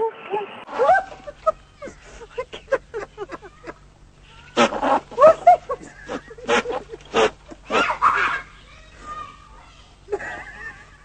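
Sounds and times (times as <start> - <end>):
goat bleating: 4.3 - 5.2.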